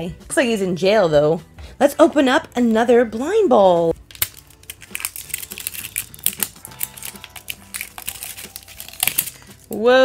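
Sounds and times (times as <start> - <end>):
plastic capsule clicking: 4.0 - 9.4
wrapper crinkling: 4.0 - 9.8.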